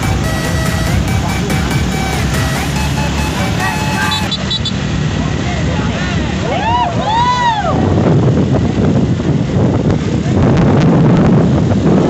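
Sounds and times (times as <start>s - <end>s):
background music: 0.0s - 4.3s
truck passing: 0.0s - 10.4s
motorbikes passing: 0.0s - 12.0s
wind buffeting microphone: 6.3s - 12.0s.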